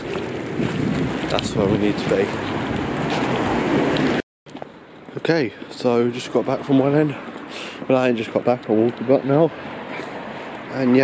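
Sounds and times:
loud rushing street noise: 0.0 - 11.0
quiet outdoor background: 0.0 - 11.0.

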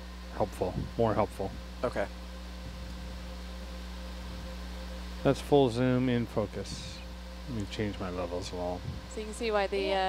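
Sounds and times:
low electrical hum: 0.0 - 10.0
ventilation and equipment fans hiss: 0.0 - 10.0.

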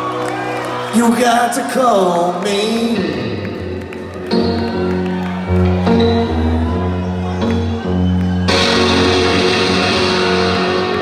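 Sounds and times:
deep bass line: 2.7 - 11.0
electric guitar held chords: 3.6 - 11.0.

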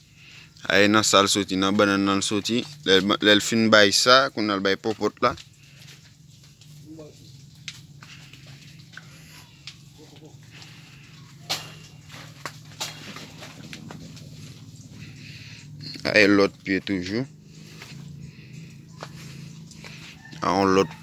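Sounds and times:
faint distant calls: 0.0 - 21.0
footsteps on dirt path: 4.5 - 21.0
steady low hum: 5.1 - 20.2
twigs and dry leaves snapping: 7.4 - 16.0, 16.7 - 21.0.

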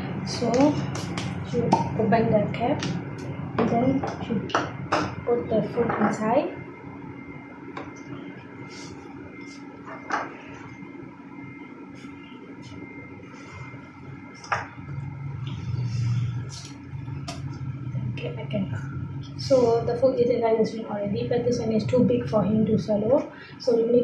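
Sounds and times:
low hum: 0.0 - 24.0
steady room hum: 0.0 - 24.0.

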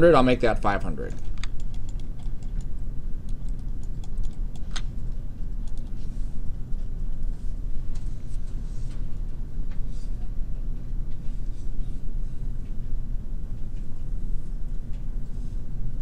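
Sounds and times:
steady low hum: 0.0 - 16.0
computer mouse and keyboard clicks: 1.1 - 2.7, 3.3 - 4.9, 5.5 - 6.0.

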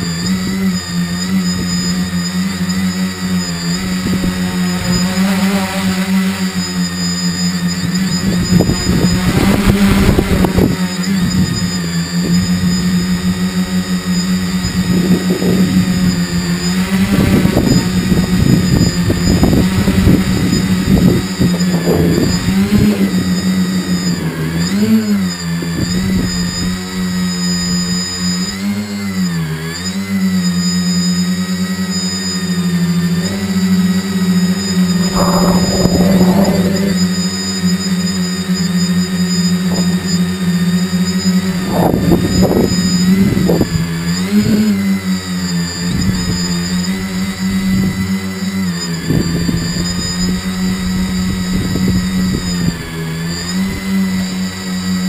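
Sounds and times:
drone motors and propellers whining: 0.0 - 55.0
wind gusts on microphone: 17.1 - 24.8, 34.8 - 37.4.

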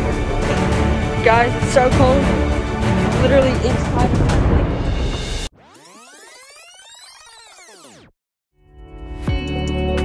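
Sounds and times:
electronic rewind whirr: 5.5 - 8.1.

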